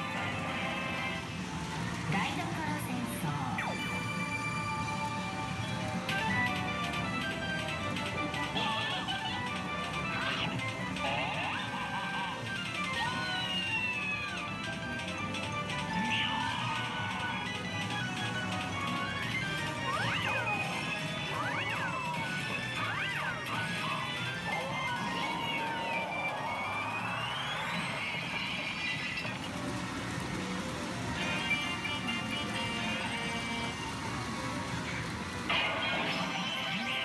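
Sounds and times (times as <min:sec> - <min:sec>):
pachinko machine music: 0:00.0 - 0:37.0.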